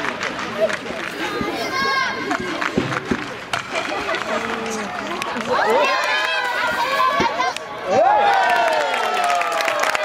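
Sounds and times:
young voices shouting: 5.4s - 9.8s.

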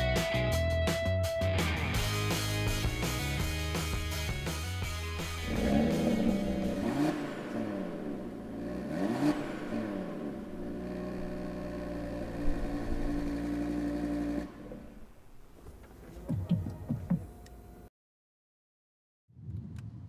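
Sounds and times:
car engine revving and idling: 2.7s - 16.8s.

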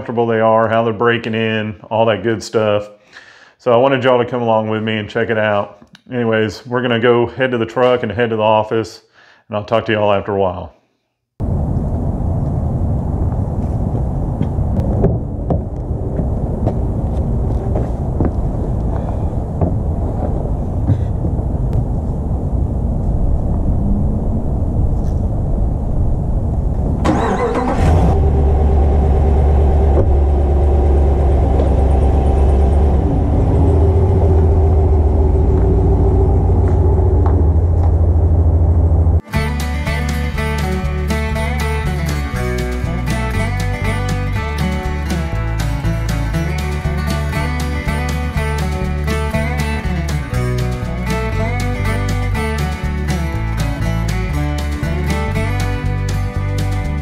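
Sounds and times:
outdoor background noise: 11.4s - 39.3s
truck engine starting and idling: 23.8s - 57.0s
guitar music: 27.1s - 57.0s.

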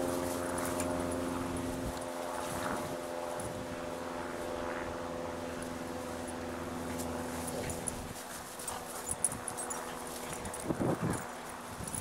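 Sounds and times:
dogs scuffling: 6.1s - 12.0s.

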